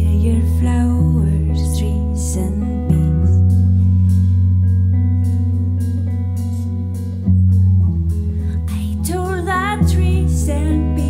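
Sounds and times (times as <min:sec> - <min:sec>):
bass notes: 0:00.0 - 0:11.0
guitar: 0:00.0 - 0:11.0.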